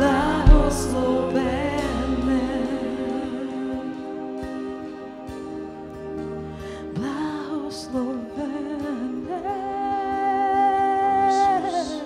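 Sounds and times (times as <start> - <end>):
woman singing a long note: 0.0 - 4.4
soft sustained accompaniment: 0.0 - 12.0.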